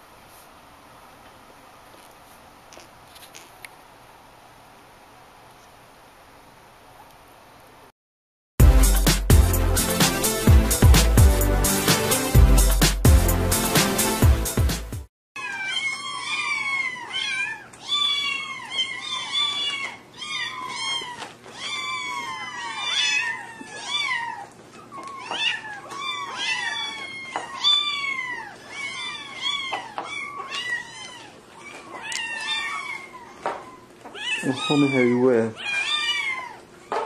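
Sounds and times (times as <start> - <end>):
kittens mewing: 15.4 - 37.0.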